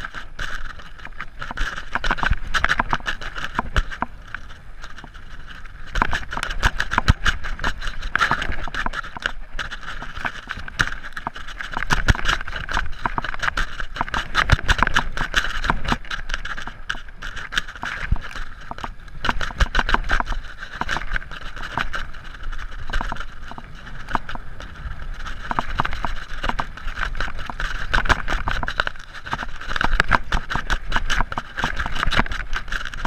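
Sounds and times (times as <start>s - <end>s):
bike rattling over bumps: 0.0s - 33.0s
sharp knocks and clicks: 0.0s - 33.0s
tyres on loose dirt: 0.0s - 33.0s.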